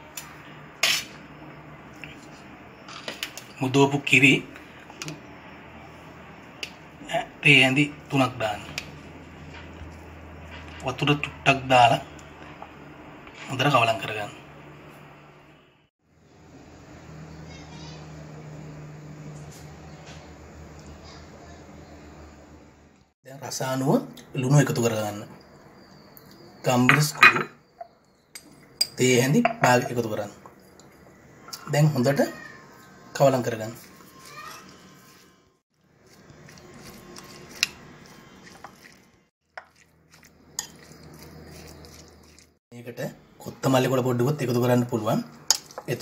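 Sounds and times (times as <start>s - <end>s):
spoon and dishware clinking: 26.8s - 30.0s, 40.6s - 42.4s.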